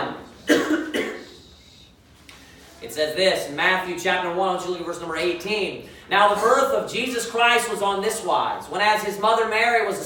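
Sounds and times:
man coughing: 0:00.4 - 0:01.6.

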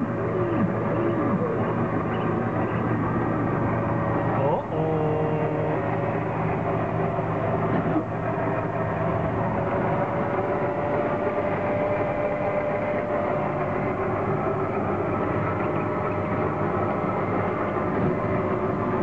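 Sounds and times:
faint held whine: 0:00.0 - 0:19.0
ride car mechanical hum and rumble: 0:00.0 - 0:19.0.

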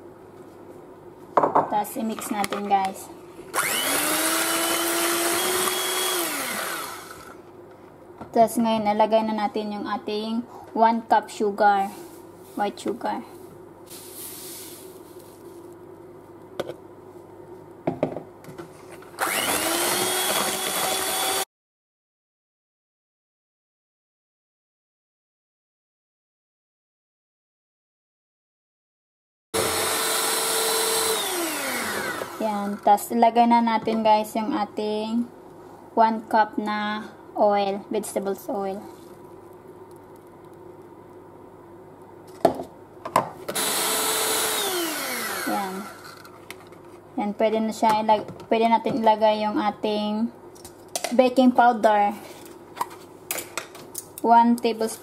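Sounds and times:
electric hand mixer motor: 0:03.5 - 0:07.4, 0:19.2 - 0:21.4, 0:29.6 - 0:32.8, 0:43.5 - 0:46.3.

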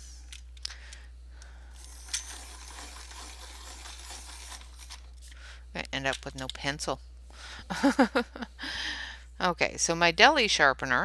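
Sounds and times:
pencil sharpener scraping: 0:01.8 - 0:05.1.

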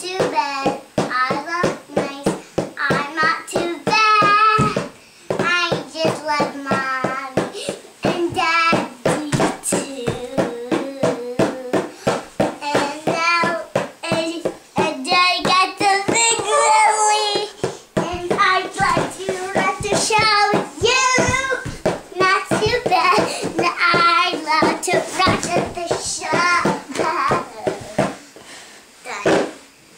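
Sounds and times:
young girl singing: 0:00.0 - 0:28.2.

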